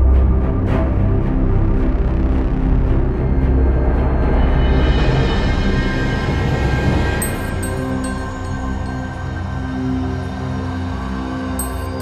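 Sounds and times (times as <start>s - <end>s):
droning music: 0.0s - 12.0s.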